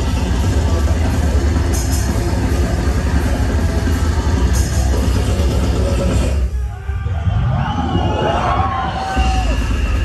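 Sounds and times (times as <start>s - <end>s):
drums: 0.0s - 10.0s.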